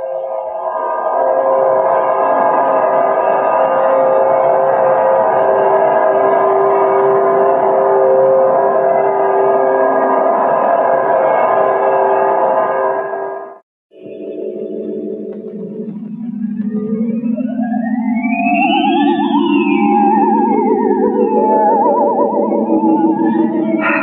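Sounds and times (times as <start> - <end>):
eerie sustained drone chord: 0.0 - 24.0.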